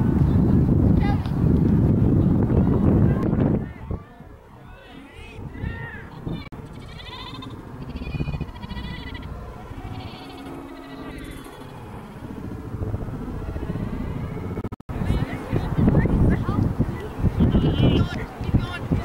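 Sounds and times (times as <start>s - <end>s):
background murmur: 0.0s - 19.0s
distant children shouting: 2.6s - 14.6s.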